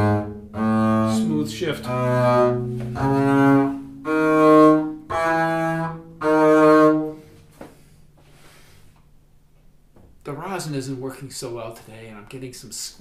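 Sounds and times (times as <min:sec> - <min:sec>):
bowed double bass notes: 0:00.0 - 0:10.5.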